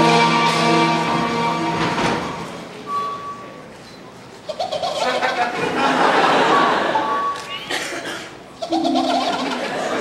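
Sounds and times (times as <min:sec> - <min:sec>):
ocarina notes: 0:08.6 - 0:10.0.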